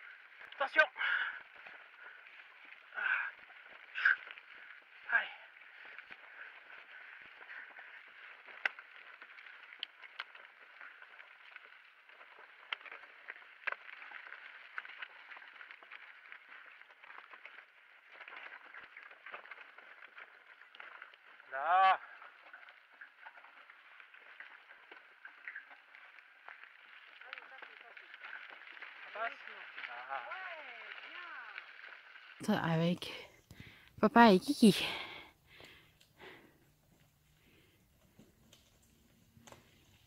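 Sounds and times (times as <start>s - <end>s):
clicks and rattles over stones: 0.0s - 32.4s
bike rolling on rocky trail: 0.0s - 40.0s.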